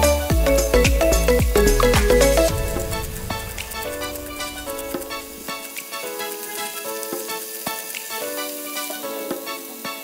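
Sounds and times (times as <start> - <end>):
background music: 0.0 - 10.0
meat sizzling in a frying pan: 3.0 - 10.0.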